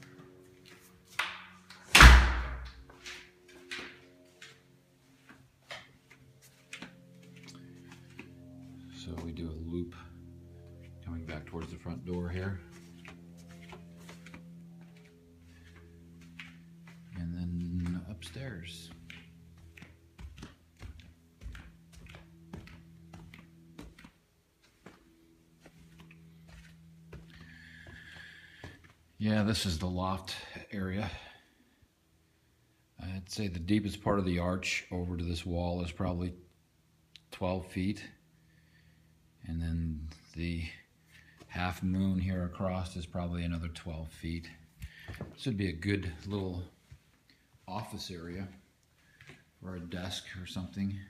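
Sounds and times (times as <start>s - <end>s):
faint steady hum: 0.0s - 51.0s
footsteps on carpeted stairs: 12.6s - 29.0s, 44.8s - 45.4s, 46.0s - 47.7s.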